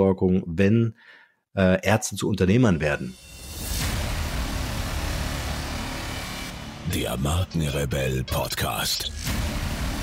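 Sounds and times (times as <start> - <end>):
noisy whoosh: 3.2 - 7.6
low bass rumble: 3.6 - 7.5.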